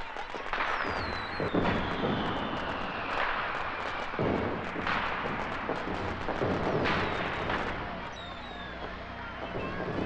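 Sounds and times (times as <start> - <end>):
firework bangs: 0.0 - 10.0
fountain fireworks crackling: 0.0 - 10.0
falling firework whistle: 0.5 - 10.0.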